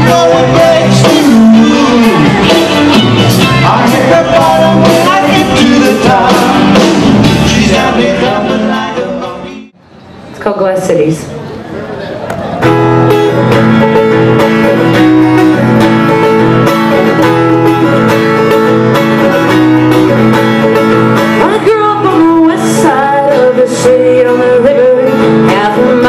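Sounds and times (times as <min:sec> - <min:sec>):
acoustic guitar strumming: 0:00.0 - 0:09.7, 0:12.6 - 0:26.0.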